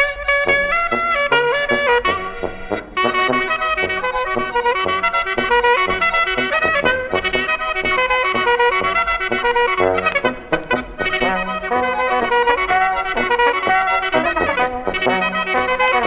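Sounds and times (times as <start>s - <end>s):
brass accompaniment: 0.0s - 16.0s
clarinet melody: 0.0s - 16.0s.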